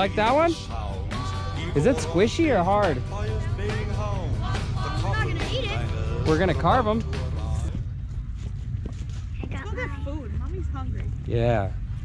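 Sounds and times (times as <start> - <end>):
wind rumble on microphone: 7.6 - 12.0.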